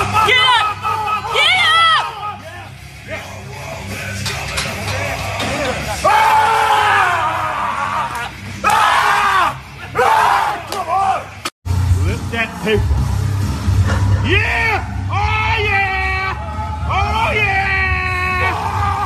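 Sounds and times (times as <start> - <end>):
men yelling: 0.0 - 3.3, 4.7 - 11.4
background music with bass: 0.0 - 19.0.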